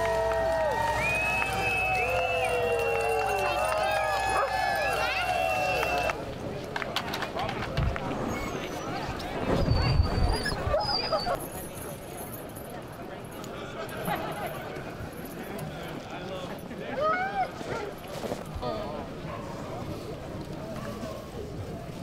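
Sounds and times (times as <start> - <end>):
sled dogs howling and yelping: 2.0 - 6.1.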